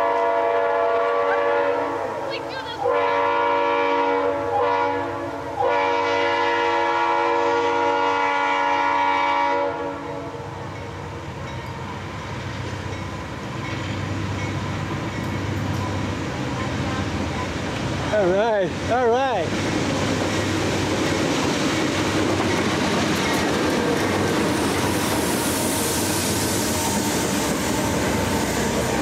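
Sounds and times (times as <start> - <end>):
locomotive air horn chord: 0.0 - 10.5
diesel locomotive engines rumbling: 0.0 - 29.0.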